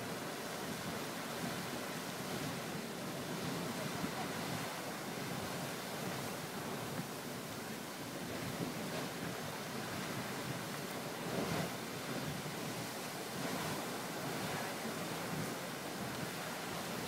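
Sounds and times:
geyser water rushing and splashing: 0.0s - 17.0s.

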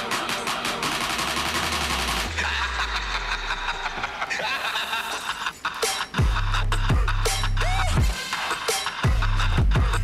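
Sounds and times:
electronic music with fast beat: 0.0s - 10.0s.

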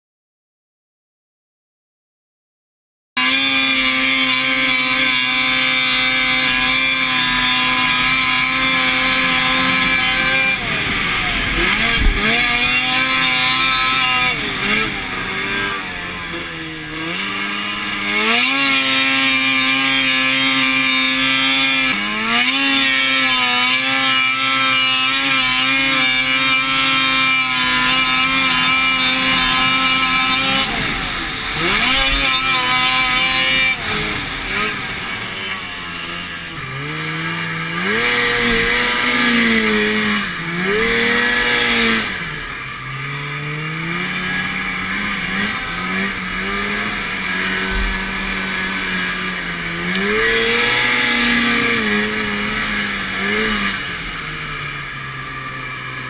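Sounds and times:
snowmobile engine revving: 3.2s - 56.0s.

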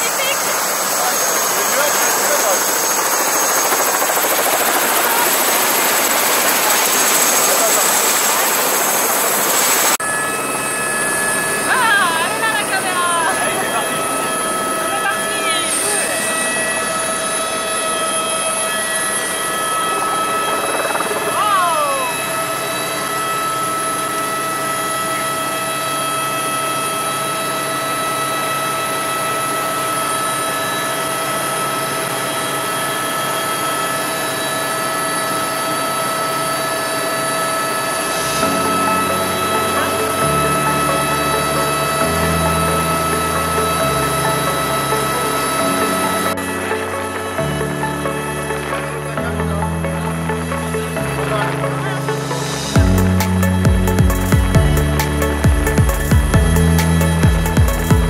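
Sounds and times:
helicopter turbine and rotor: 0.0s - 58.0s
music: 38.2s - 58.0s.

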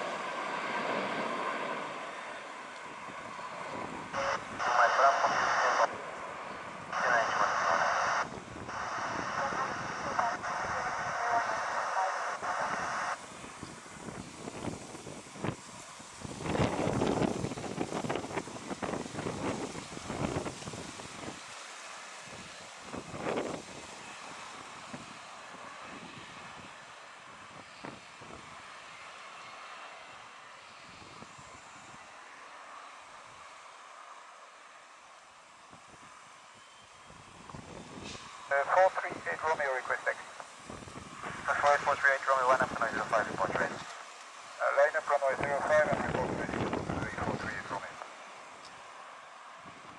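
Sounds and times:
jet airliner engines rushing: 0.0s - 34.4s, 35.8s - 49.9s
wind buffeting microphone: 2.9s - 5.5s, 6.6s - 11.4s, 12.5s - 21.5s, 22.3s - 24.0s, 37.1s - 38.2s, 40.6s - 43.9s, 45.3s - 47.8s.

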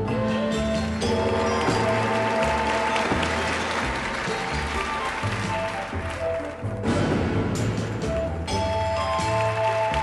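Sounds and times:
audience applause: 1.1s - 6.8s.

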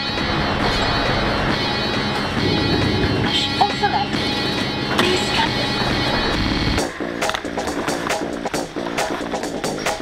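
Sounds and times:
background music with quick beat: 2.4s - 10.0s.

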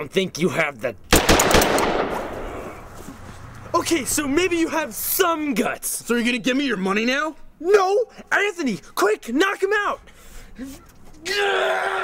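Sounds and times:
rapid gunfire with echo: 1.1s - 2.8s.

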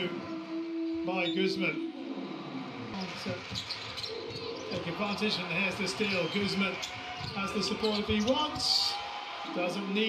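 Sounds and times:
arena crowd noise: 0.0s - 10.0s
sneakers squeaking on hardwood: 3.0s - 5.2s, 5.9s - 8.6s.

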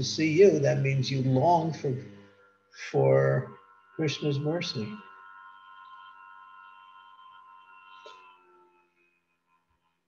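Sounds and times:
faint ringing tone: 0.0s - 10.0s.

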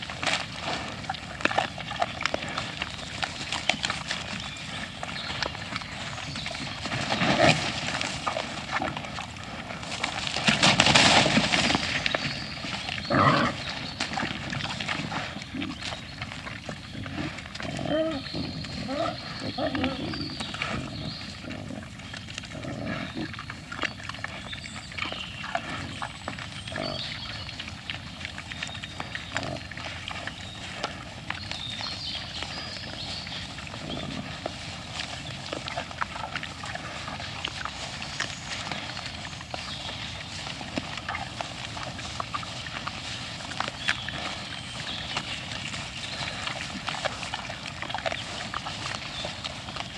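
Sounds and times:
clicks and crunches of feeding: 0.0s - 18.9s, 19.5s - 49.9s
wild boar grunting: 0.0s - 49.9s.

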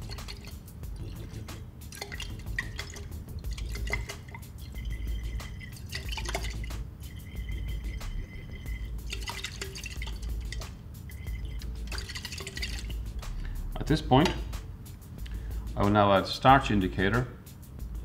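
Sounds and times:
liquid swirling and dripping in glass: 0.0s - 13.3s.

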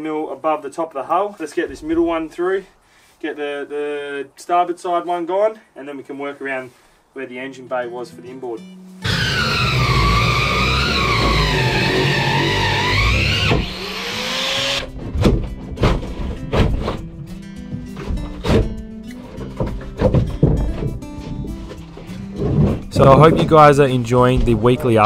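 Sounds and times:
angle grinder cutting wood: 9.0s - 15.0s
crowbar knocking and breaking wood: 14.9s - 17.0s, 18.0s - 21.0s.

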